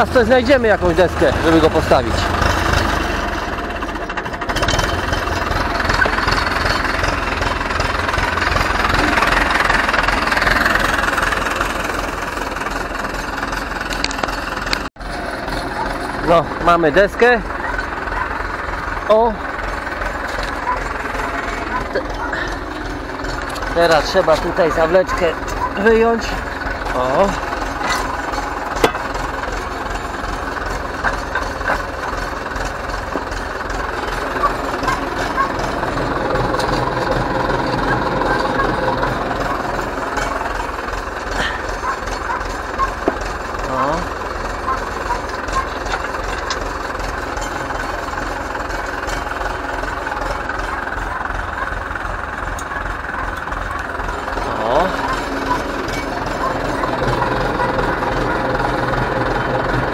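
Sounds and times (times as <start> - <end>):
tractor diesel engine idling: 0.0 - 59.9.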